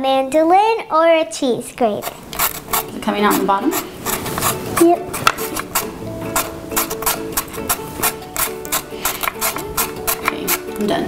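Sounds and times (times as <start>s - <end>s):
mandolin slicer rasping: 2.0s - 11.0s
background music with held tones: 2.2s - 11.0s.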